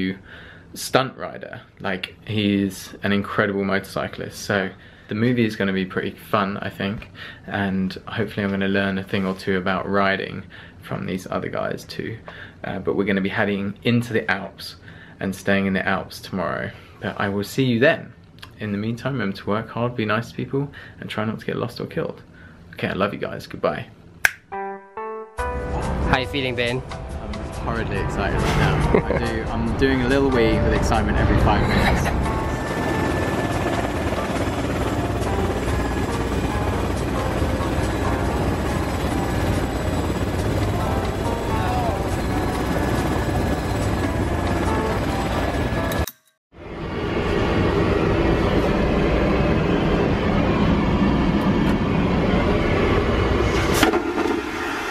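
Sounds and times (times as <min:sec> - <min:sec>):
finger snap: 0:24.2 - 0:24.6
airliner roar inside cabin: 0:28.0 - 0:54.9.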